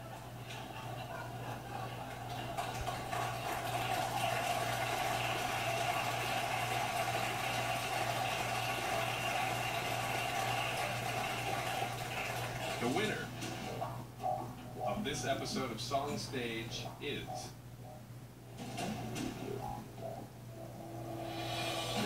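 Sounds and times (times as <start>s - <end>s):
audience clapping and cheering: 0.0s - 13.6s.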